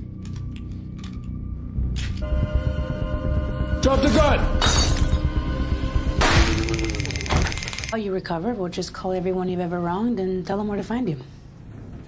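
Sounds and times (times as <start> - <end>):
tense background music: 0.0 - 8.9
glass bottle shattering: 4.6 - 5.2.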